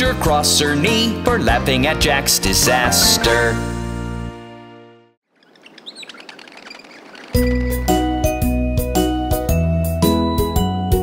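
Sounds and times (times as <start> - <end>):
small birds chirping: 5.3 - 8.2.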